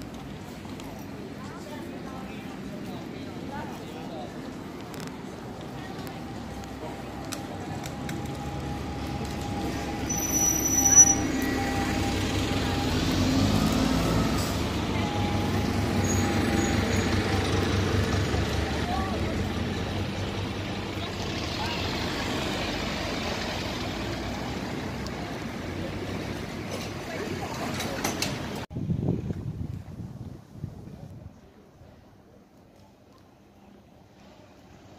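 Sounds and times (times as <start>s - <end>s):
street traffic noise: 0.0s - 34.9s
van engine driving past: 11.2s - 27.4s.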